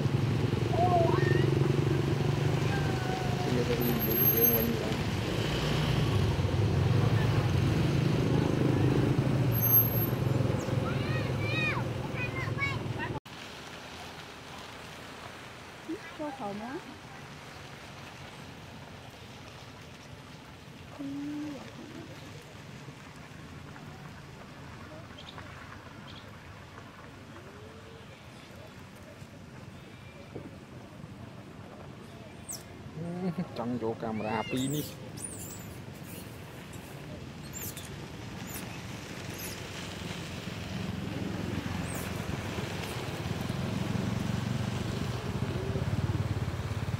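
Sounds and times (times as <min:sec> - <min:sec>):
faint outdoor hiss: 0:09.6 - 0:46.9.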